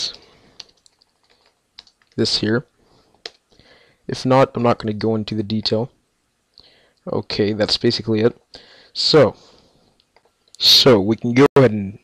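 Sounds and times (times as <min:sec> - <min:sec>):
keyboard keys tapping: 0:00.6 - 0:02.2.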